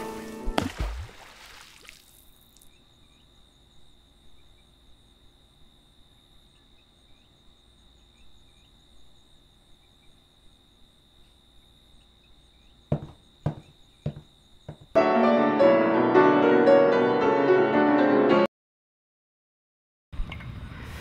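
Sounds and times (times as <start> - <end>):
crickets trilling: 0.0 - 15.0.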